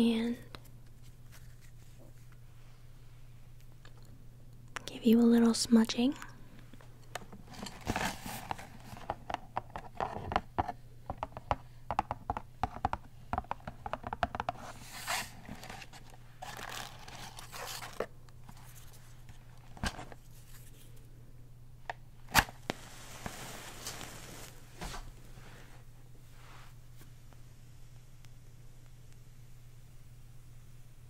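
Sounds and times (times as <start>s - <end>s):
matchbox rustling and clicking: 15.0s - 18.9s.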